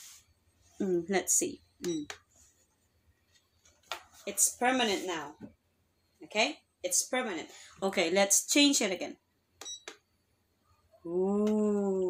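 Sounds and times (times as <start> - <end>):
high electronic beep: 1.8 - 2.2.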